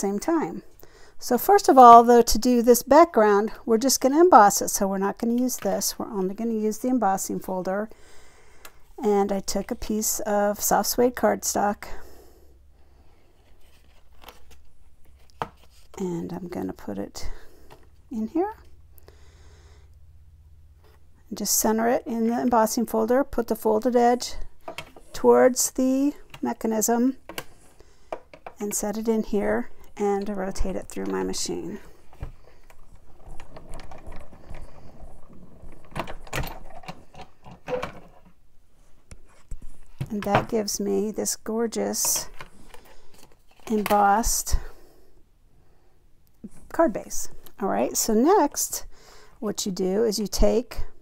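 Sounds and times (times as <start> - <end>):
plastic folder and card handling: 13.4 - 16.0.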